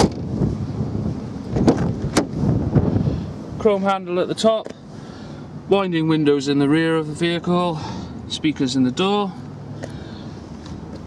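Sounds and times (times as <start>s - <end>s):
wind rumbling on microphone: 0.0s - 3.8s.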